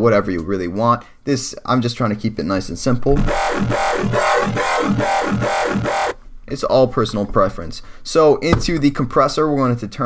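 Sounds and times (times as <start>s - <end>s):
pulsing synth bass growl: 3.1s - 6.2s.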